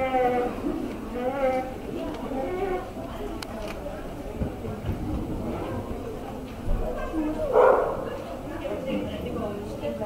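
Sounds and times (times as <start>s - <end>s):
dog barking: 7.5s - 8.1s.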